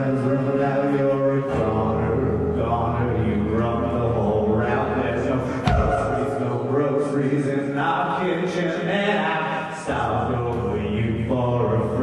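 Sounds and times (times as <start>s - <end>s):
live music low drone: 0.0s - 12.0s.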